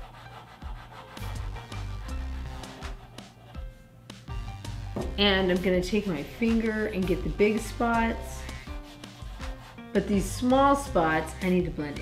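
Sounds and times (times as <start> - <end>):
pastel scraping on paper: 0.0 - 3.8, 6.5 - 11.6
soft background music: 0.0 - 12.0.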